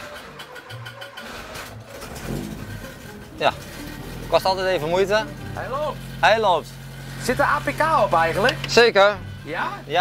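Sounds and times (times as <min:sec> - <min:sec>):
starter motor cranking: 0:00.0 - 0:09.1
car engine idling: 0:00.0 - 0:10.0.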